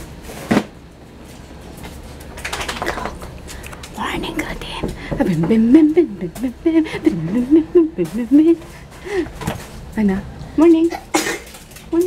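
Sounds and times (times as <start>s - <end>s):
person speaking softly: 3.9s - 6.7s.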